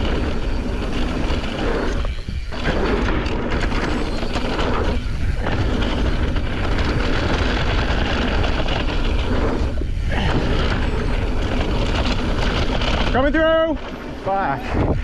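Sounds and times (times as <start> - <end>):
bike rattling over bumps: 0.0 - 15.0
tyres on dirt: 0.0 - 15.0
wind on microphone: 0.0 - 15.0.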